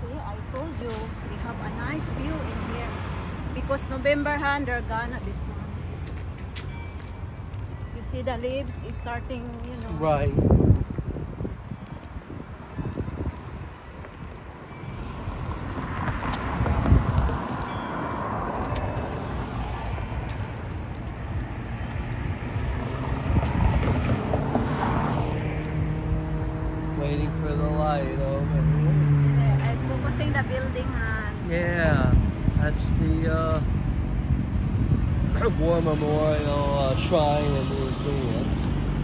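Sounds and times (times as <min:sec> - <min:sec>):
car traffic: 0:00.0 - 0:39.0
vehicle engine humming: 0:00.0 - 0:39.0
wind on microphone: 0:09.7 - 0:14.5, 0:15.4 - 0:26.9, 0:31.6 - 0:39.0.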